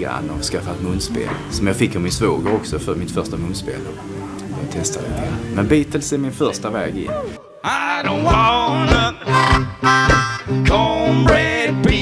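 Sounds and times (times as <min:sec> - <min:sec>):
guitar: 0:00.0 - 0:12.0
live blues band playing: 0:08.1 - 0:12.0
steady drum beat: 0:08.1 - 0:12.0
harmonica: 0:08.2 - 0:12.0.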